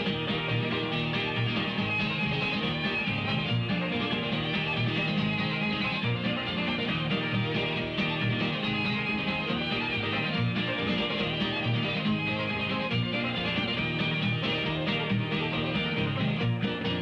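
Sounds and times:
bluegrass string band playing: 0.0s - 17.0s.

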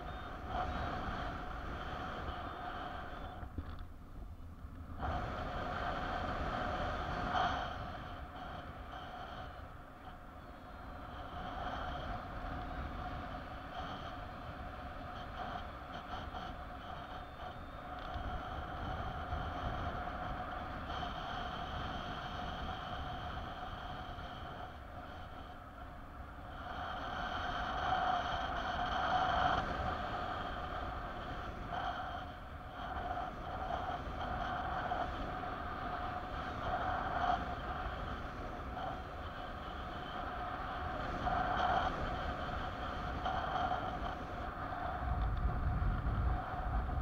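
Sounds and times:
continuous high tone: 0.0s - 3.8s, 7.4s - 47.0s
wind rushing over microphone: 0.0s - 47.0s.

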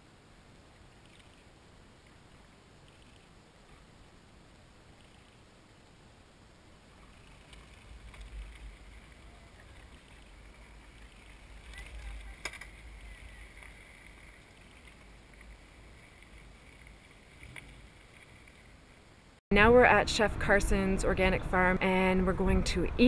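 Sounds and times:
bicycles riding past: 6.8s - 19.3s.

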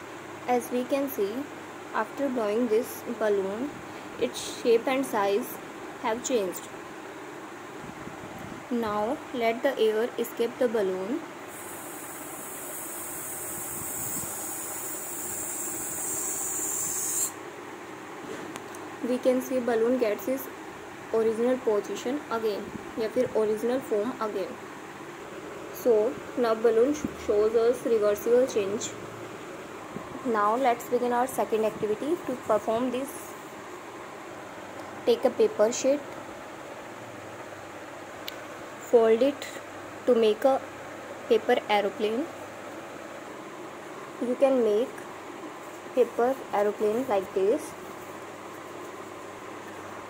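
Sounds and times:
room noise hiss: 0.0s - 50.0s
air hissing out of balloon: 11.5s - 17.4s.

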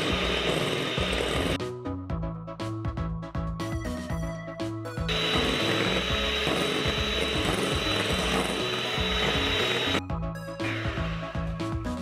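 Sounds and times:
electric hand mixer whirring: 0.0s - 1.6s, 5.1s - 10.0s.

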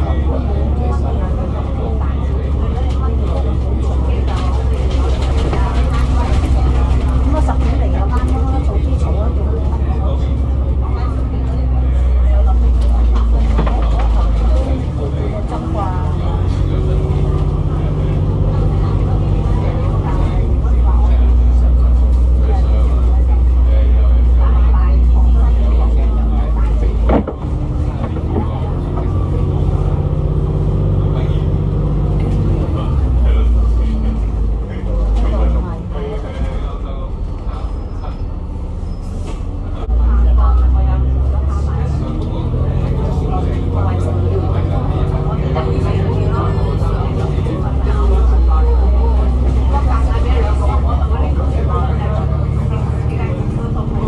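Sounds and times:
bus diesel engine drone: 0.0s - 54.0s.

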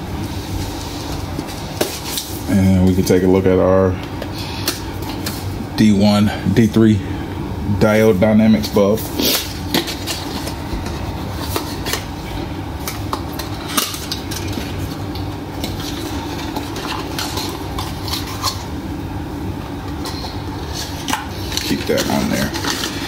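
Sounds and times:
steady background hum: 0.0s - 23.0s.

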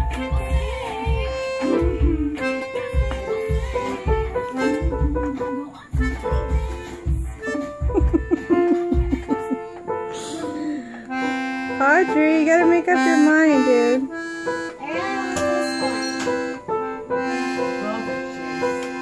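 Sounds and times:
drum and bass beat: 0.0s - 9.6s
held lead melody: 0.0s - 19.0s.

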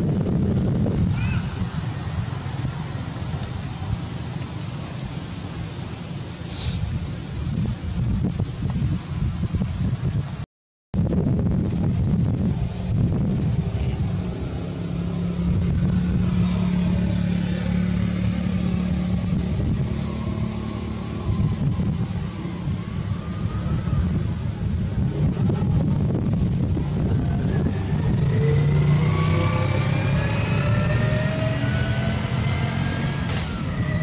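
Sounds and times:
wind rumbling on microphone: 0.0s - 34.0s
steady motor hum: 11.8s - 29.5s.

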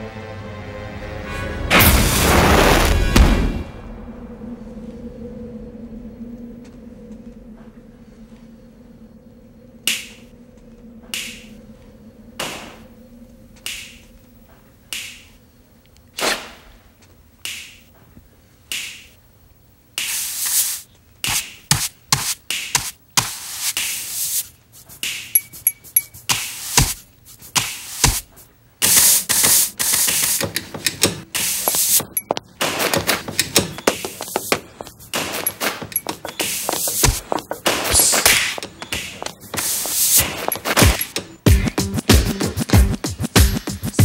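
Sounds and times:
brushing sound: 20.0s - 41.2s.

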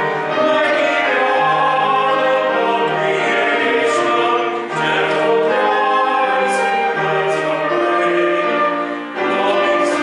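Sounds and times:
instrumental accompaniment: 0.0s - 10.0s
slow hymn singing: 0.0s - 10.0s.

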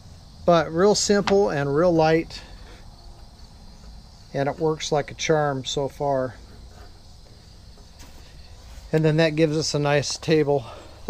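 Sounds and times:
insect chirring: 0.0s - 11.0s.

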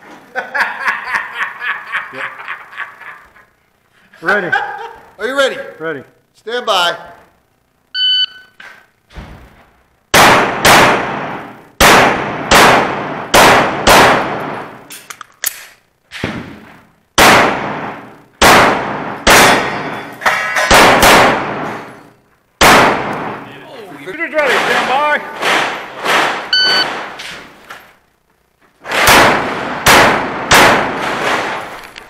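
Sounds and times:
electronic shot timer beep: 8.0s - 8.6s, 26.5s - 26.9s
pistol shots ringing: 10.1s - 14.9s, 17.2s - 23.5s, 28.9s - 31.7s.

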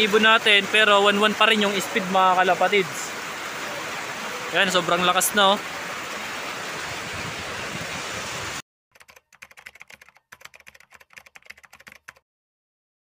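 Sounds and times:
heavy rain on metal roofs: 0.0s - 8.6s
keyboard typing clicks: 9.0s - 12.2s.

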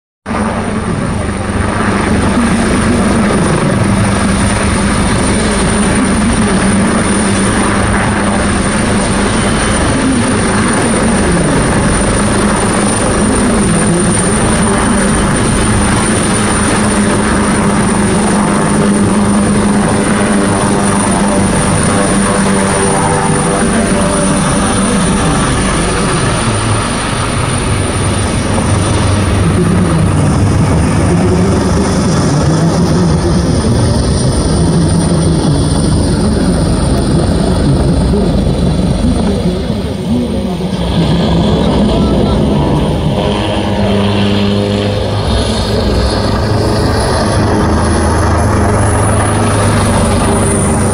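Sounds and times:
helicopter rotor and engine: 0.2s - 50.9s
thin high whine: 1.6s - 50.9s.

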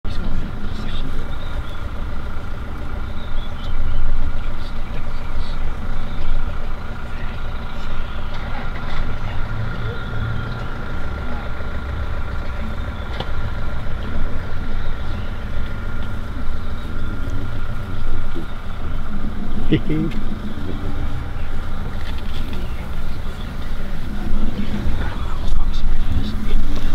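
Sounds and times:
vehicle engine idling low: 0.1s - 26.9s.

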